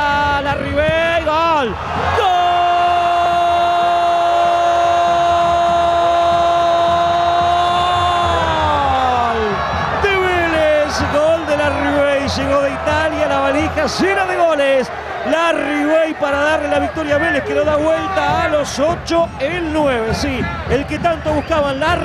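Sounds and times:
excited shouted commentary: 0.0 - 22.0.

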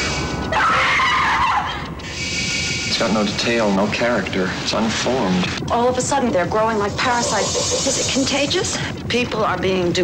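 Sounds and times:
harsh screeching sound effect: 0.0 - 1.4, 6.8 - 8.5.

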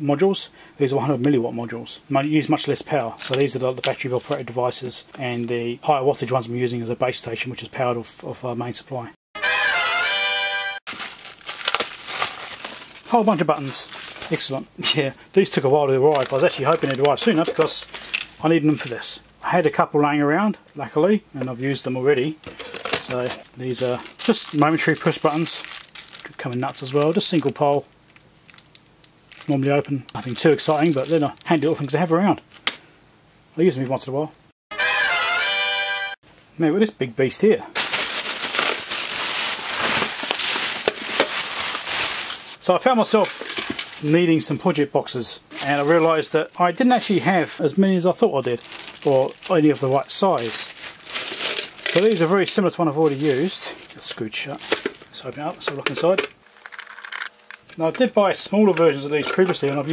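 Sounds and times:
plastic bag crinkling: 3.1 - 4.5, 10.9 - 14.6, 15.4 - 18.8, 22.4 - 32.6, 37.7 - 44.5, 45.5 - 47.4, 48.2 - 57.8
sharp plastic crackles: 3.2 - 4.5, 10.9 - 14.6, 16.0 - 18.5, 22.4 - 32.8, 37.8 - 44.2, 48.5 - 52.4, 53.0 - 57.8.

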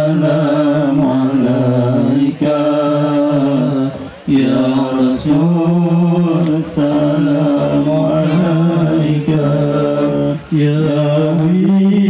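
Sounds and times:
man chanting over loudspeaker: 0.0 - 12.0.

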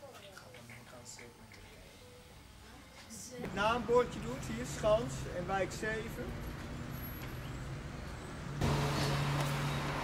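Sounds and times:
street traffic: 3.4 - 10.0
vehicle engine humming: 3.6 - 10.0.

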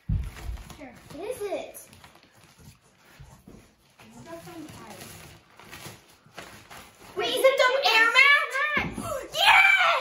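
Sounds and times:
girl squealing: 9.0 - 10.0.

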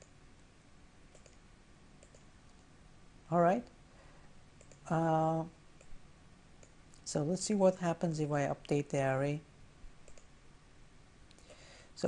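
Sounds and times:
faint mouse clicks: 1.1 - 1.4, 2.0 - 2.6, 4.6 - 4.9, 6.6 - 7.0, 10.0 - 10.3.

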